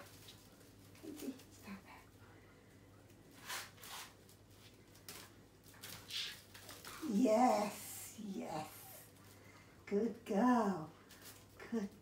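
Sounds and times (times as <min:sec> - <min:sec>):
puppy rustling in basket: 0:00.0 - 0:02.2.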